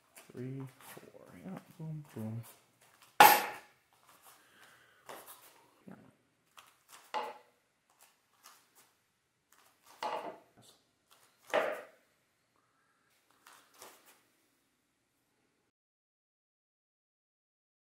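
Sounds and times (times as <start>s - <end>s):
sword knocking on buckler: 3.2s - 3.7s, 11.5s - 11.9s.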